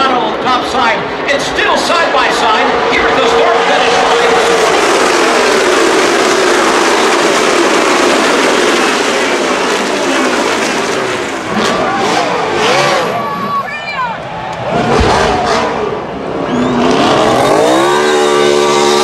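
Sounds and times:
crowd voices: 0.0s - 19.0s
race car engines roaring past: 0.0s - 19.0s.

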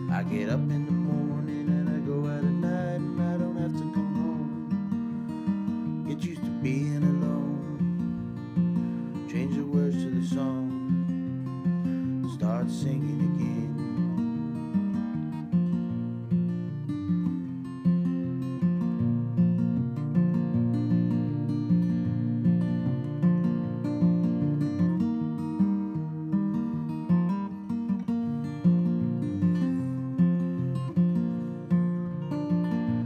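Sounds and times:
acoustic guitar strumming chords: 0.0s - 33.0s.

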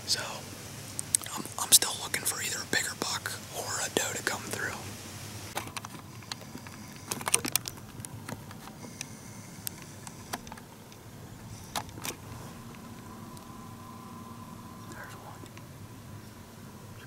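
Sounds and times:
camera handling clicks and rustles: 5.6s - 10.7s.

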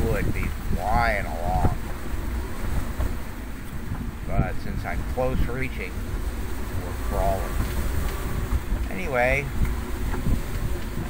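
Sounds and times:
rough sea wash: 0.0s - 11.0s
strong wind rushing: 0.0s - 11.0s
wind buffeting microphone: 0.0s - 11.0s.

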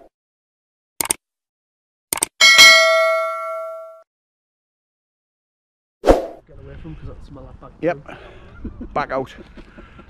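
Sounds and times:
quick clicks: 1.0s - 1.2s, 2.1s - 2.3s
bright bell ding: 2.4s - 4.0s.

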